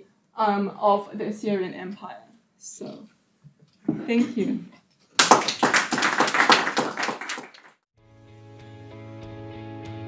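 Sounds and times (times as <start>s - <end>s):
audience applause: 5.2s - 7.8s.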